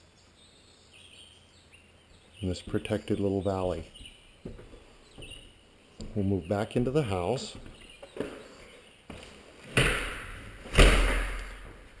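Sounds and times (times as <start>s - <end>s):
heavy thuds ringing in empty room: 9.7s - 12.0s.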